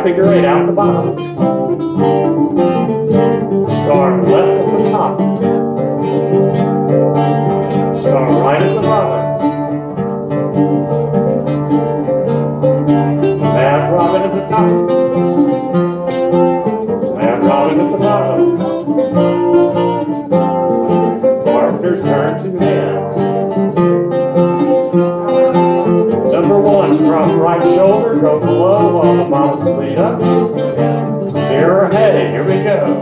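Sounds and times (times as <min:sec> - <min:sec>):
bouzouki and guitar strumming: 0:00.0 - 0:33.0
recorder melody: 0:00.0 - 0:33.0.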